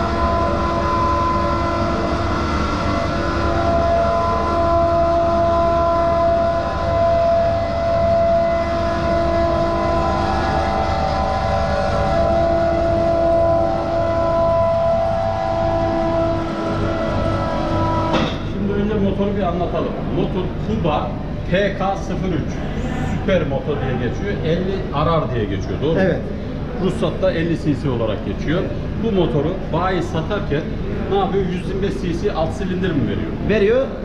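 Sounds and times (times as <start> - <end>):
steady whine: 0.0 - 34.0.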